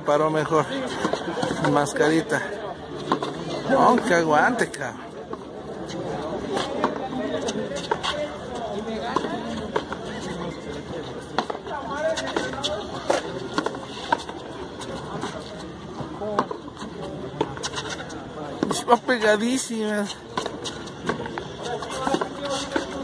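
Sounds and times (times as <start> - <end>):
people talking: 0.1 - 20.5, 21.2 - 23.0.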